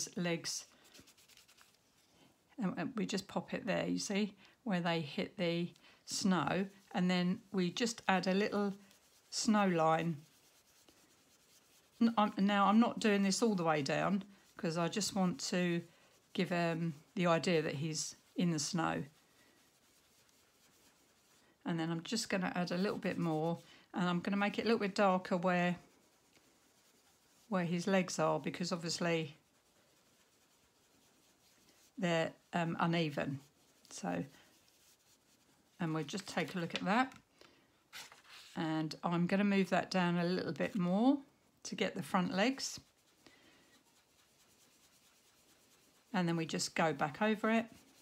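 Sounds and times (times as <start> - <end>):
baby wipe rubbing over paper: 0.0 - 2.1, 5.1 - 37.2, 37.9 - 40.8, 41.8 - 48.0.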